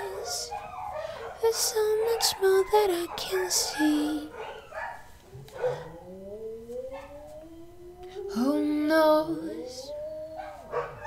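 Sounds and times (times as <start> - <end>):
rising howl-like wail: 5.4 - 11.0.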